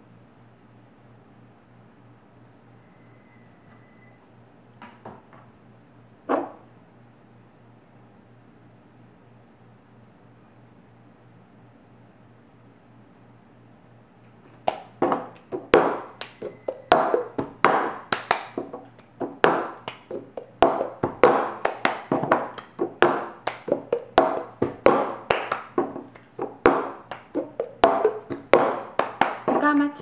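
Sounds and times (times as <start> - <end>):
hands slapping tabletop: 14.5 - 29.7
hands clapping: 14.6 - 29.7
plastic cup knocking on table: 15.0 - 18.0, 18.6 - 29.6.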